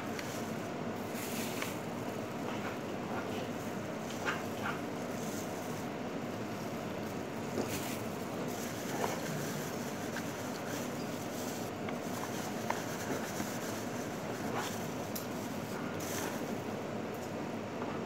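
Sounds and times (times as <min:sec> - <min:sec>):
steady background noise: 0:00.0 - 0:18.0.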